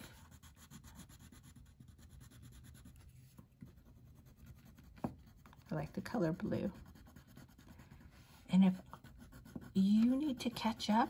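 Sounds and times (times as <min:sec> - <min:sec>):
crayon scratching on paper: 0:00.0 - 0:11.0.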